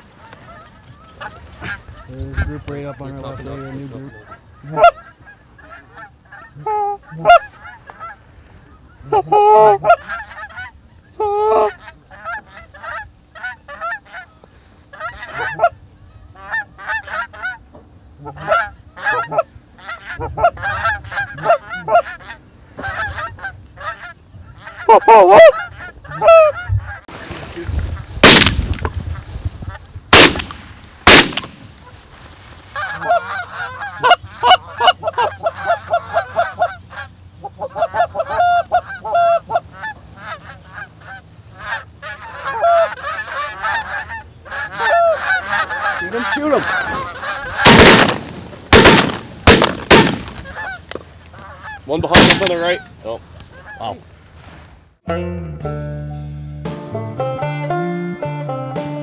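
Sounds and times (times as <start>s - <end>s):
geese honking: 0.0s - 54.6s
shotgun shots: 28.2s - 28.8s, 30.1s - 31.7s, 47.6s - 50.6s, 52.1s - 52.7s
banjo music: 55.0s - 59.0s.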